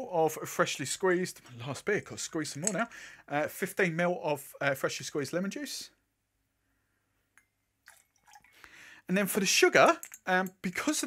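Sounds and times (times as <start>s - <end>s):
liquid trickling and dripping: 7.8s - 8.8s.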